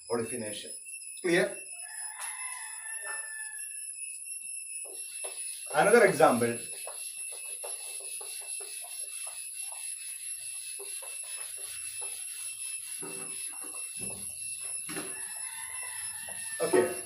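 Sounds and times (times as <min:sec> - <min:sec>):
duster rubbing on blackboard: 0:04.8 - 0:17.0.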